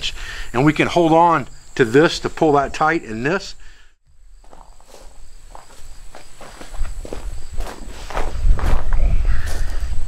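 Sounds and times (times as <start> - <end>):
leather scuffs and rustles: 4.4 - 8.8.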